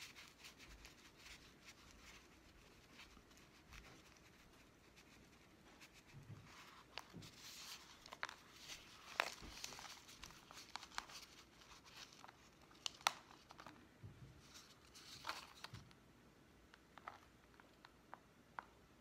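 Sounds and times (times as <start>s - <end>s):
plastic pot crinkling and clicking: 6.8s - 13.8s.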